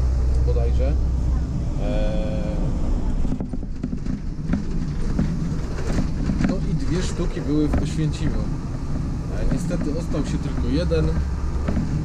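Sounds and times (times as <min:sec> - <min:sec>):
bus engine rumble: 0:00.0 - 0:12.0
clicks and knocks rattling: 0:03.2 - 0:12.0.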